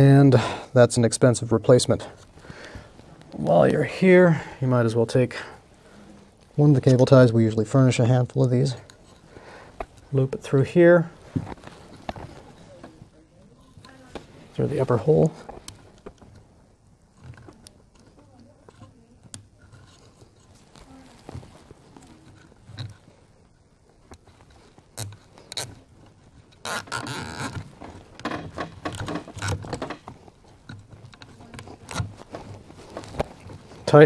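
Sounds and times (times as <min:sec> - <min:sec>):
cable tie zipping rasp: 0:25.0 - 0:25.8, 0:26.6 - 0:30.1.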